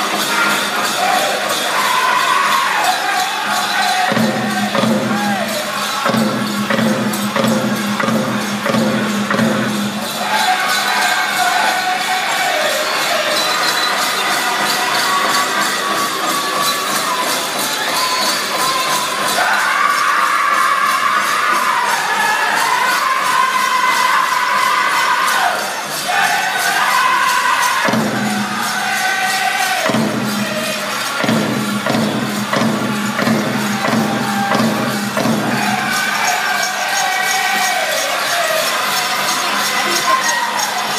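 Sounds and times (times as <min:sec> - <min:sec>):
steady drumbeat: 0:00.0 - 0:24.8, 0:25.5 - 0:40.9
bells jingling: 0:00.0 - 0:40.9
crowd cheering: 0:00.0 - 0:40.9
drum group singing: 0:00.0 - 0:40.9.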